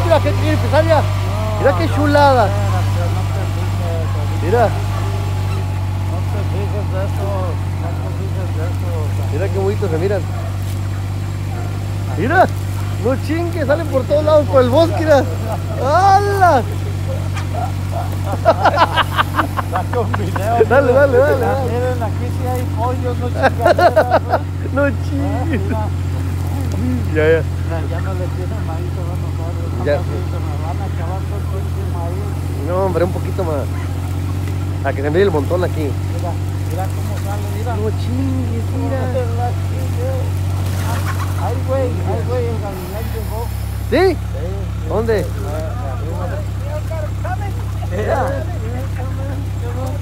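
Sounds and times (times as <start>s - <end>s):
game birds calling: 0.0s - 50.0s
low engine drone: 0.0s - 50.0s.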